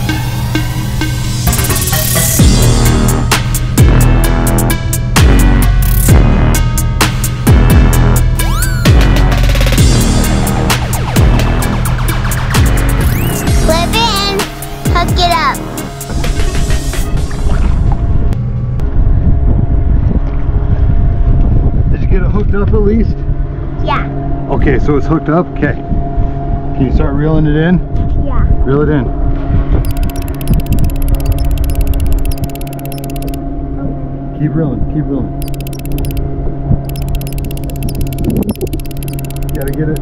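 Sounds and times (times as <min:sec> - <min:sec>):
wind buffeting microphone: 0:17.2 - 0:23.7
steady engine hum: 0:29.7 - 0:40.0
fishing reel clicking: 0:29.9 - 0:33.4, 0:35.4 - 0:36.2, 0:36.9 - 0:40.0.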